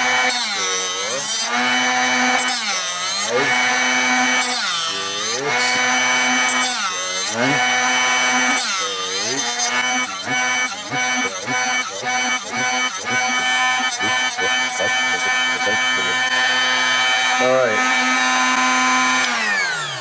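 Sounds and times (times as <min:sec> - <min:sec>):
drill bit sharpener grinding: 0:00.0 - 0:20.0.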